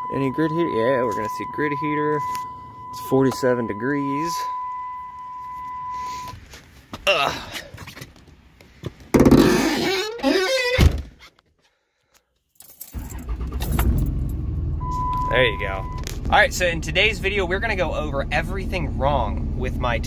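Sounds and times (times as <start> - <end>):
diesel engine starting and idling: 12.9 - 20.0.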